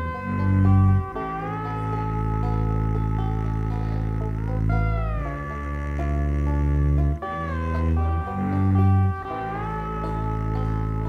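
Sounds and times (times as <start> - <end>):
slide guitar gliding: 0.0 - 11.0
upright bass low notes: 0.0 - 11.0.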